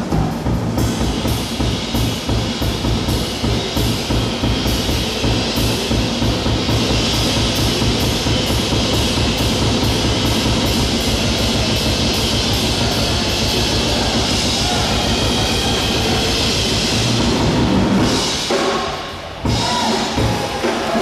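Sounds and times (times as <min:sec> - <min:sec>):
drum kit strokes: 0:00.0 - 0:21.0.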